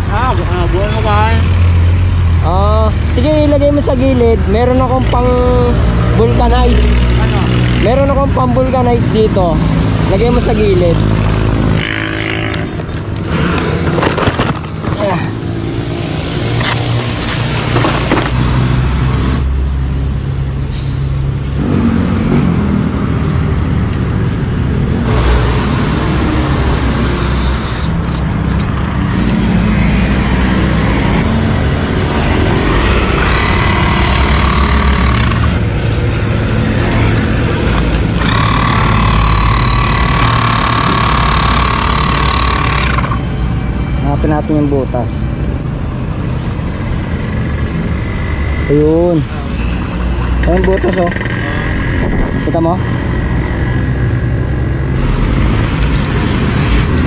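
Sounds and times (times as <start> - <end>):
low traffic-like rumble: 0.0 - 57.0
air compressor whining: 32.0 - 43.4.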